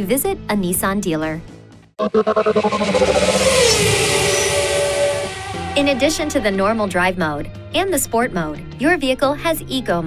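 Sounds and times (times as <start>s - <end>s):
car engine pitch falling: 2.0s - 7.2s
loud rushing hiss: 2.9s - 7.0s.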